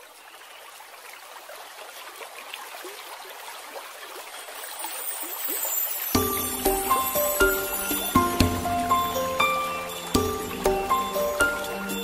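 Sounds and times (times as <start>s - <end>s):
stream water gurgling: 0.0s - 12.0s.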